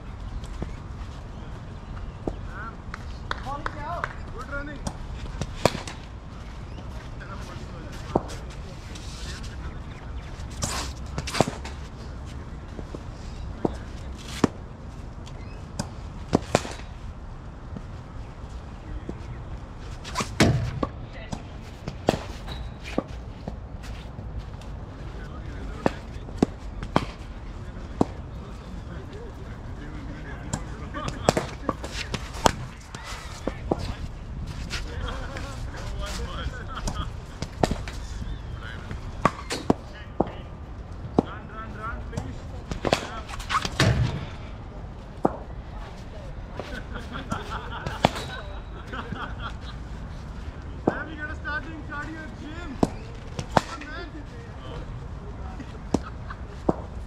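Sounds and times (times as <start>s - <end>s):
deep thud: 43.7s - 44.5s.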